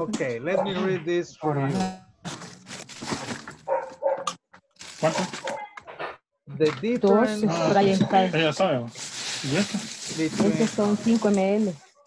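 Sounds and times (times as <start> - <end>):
dog barking: 0.5 - 0.9, 3.7 - 4.4, 5.1 - 5.8.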